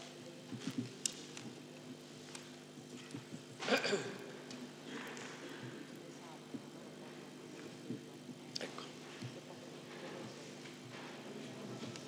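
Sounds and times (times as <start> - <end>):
faint murmured voices: 0.0 - 12.0
low electrical hum: 0.0 - 12.0.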